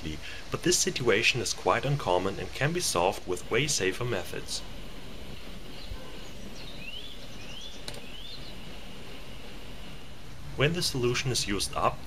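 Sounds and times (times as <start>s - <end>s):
steady low hiss: 0.0s - 12.0s
small bird chirping: 5.4s - 10.2s.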